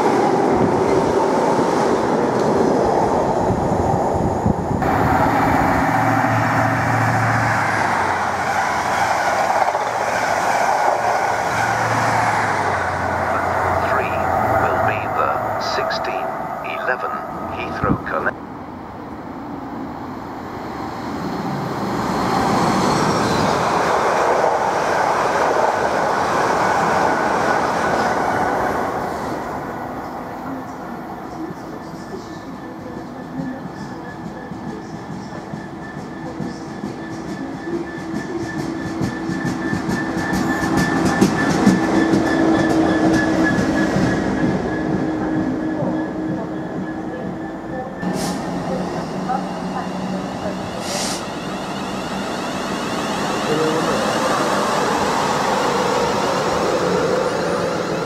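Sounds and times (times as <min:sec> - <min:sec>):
diesel locomotive engine: 0:00.0 - 0:58.0
second train running: 0:00.0 - 0:58.0
train wheel clatter: 0:34.3 - 0:44.6.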